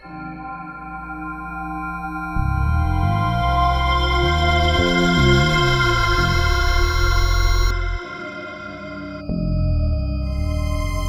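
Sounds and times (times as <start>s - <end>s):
sustained synthesizer chords: 0.0s - 11.0s
deep bass: 2.3s - 8.1s, 9.2s - 11.0s.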